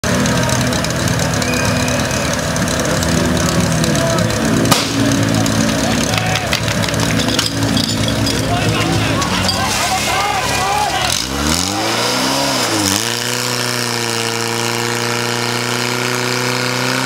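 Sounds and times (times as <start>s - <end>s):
spectators shouting and cheering: 0.0s - 14.6s
small engine running: 0.0s - 17.0s
sharp crack: 4.6s - 7.8s.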